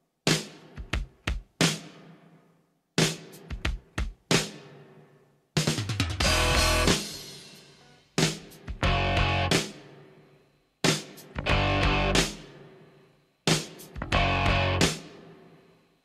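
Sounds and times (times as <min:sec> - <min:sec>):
rock band with guitar and drums: 0:06.0 - 0:09.8, 0:11.0 - 0:12.5, 0:13.5 - 0:15.2.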